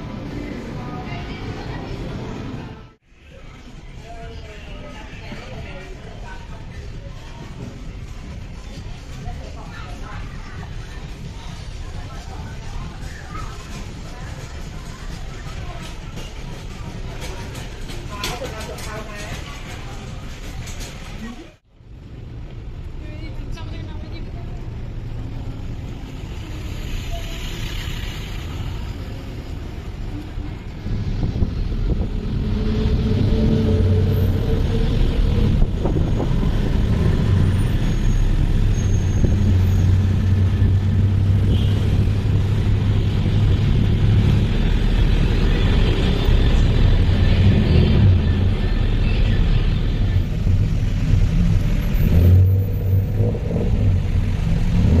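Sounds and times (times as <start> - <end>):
road and traffic noise: 0.0 - 55.0.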